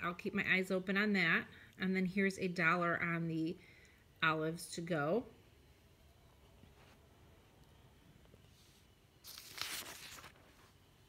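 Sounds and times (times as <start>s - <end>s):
newspaper page rustling: 8.6s - 10.8s.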